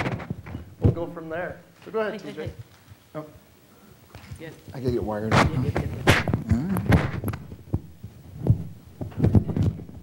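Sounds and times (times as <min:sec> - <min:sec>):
microphone handling thumps: 0:00.0 - 0:01.2, 0:05.3 - 0:10.0.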